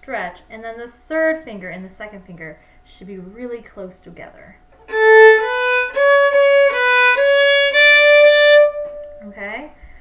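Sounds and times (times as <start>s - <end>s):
violin slow bowed notes: 4.8s - 9.3s.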